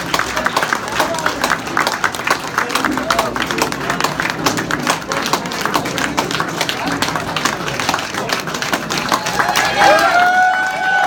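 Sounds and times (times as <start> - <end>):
audience applauding: 0.0 - 11.0
crowd chatter: 0.0 - 11.0.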